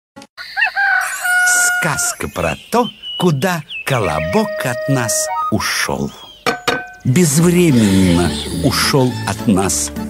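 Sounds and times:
rooster crowing: 0.4s - 2.2s
man speaking: 1.8s - 6.3s.

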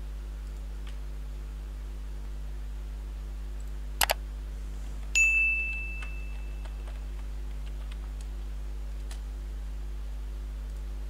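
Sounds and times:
steady low hum: 0.0s - 11.0s
mouse clicks: 3.6s - 4.2s
bright bell-like ding: 5.2s - 6.9s
faint clicks: 6.0s - 9.2s, 10.6s - 10.9s.

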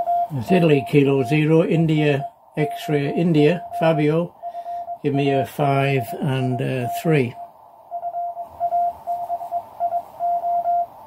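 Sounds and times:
faint radio hiss: 0.0s - 11.0s
morse code tone: 0.0s - 11.0s.

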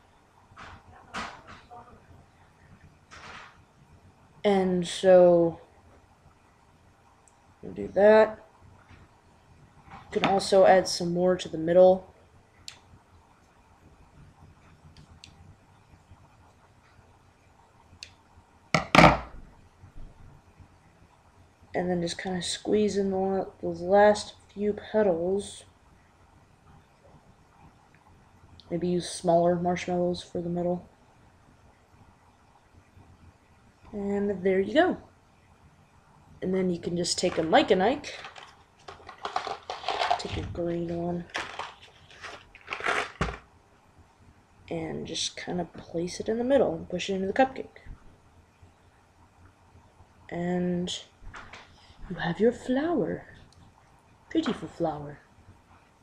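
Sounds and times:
candy knocking: 38.0s - 40.4s.

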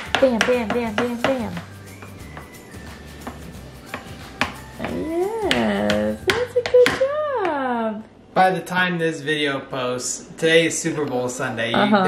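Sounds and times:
plastic spoon tapping plastic tray: 0.0s - 2.5s, 3.2s - 7.1s.

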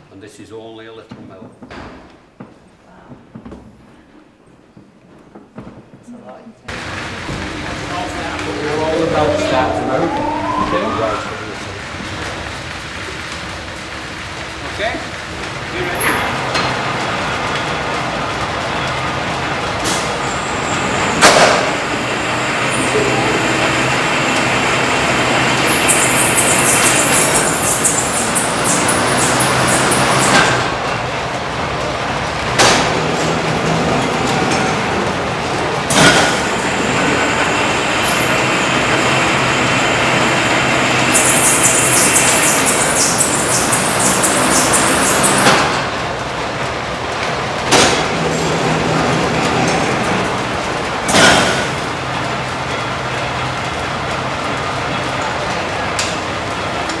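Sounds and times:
high whirr of spindles: 6.7s - 12.4s, 20.8s - 35.2s, 35.9s - 47.3s
spinning machine running: 22.7s - 30.8s, 36.7s - 45.8s.

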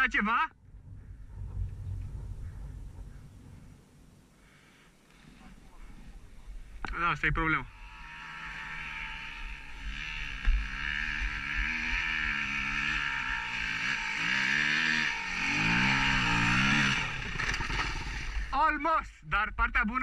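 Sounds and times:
dirt bike engine revving: 7.2s - 18.7s.

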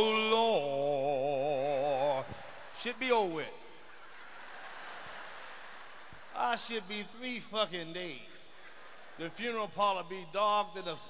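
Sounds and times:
theatre audience background noise: 1.8s - 10.3s.

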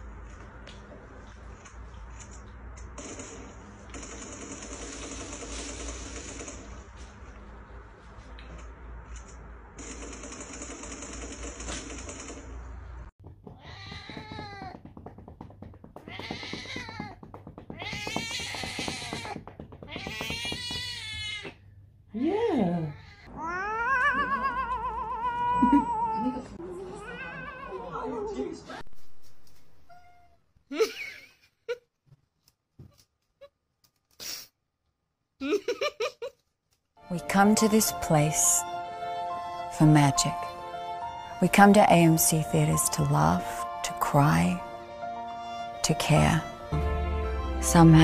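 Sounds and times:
cat meowing: 13.6s - 14.8s, 16.1s - 17.2s, 22.8s - 27.8s, 29.8s - 30.4s.

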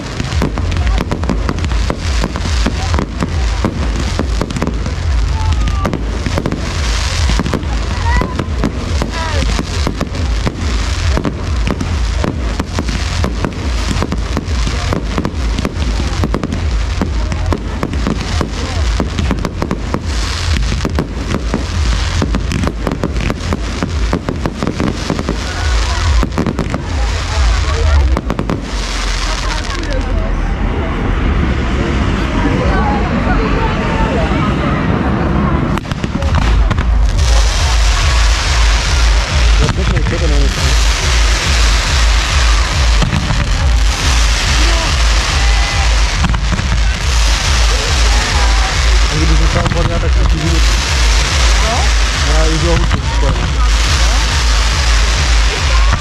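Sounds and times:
fireworks bangs and crackling: 0.0s - 56.0s
firework whistles: 35.7s - 56.0s.

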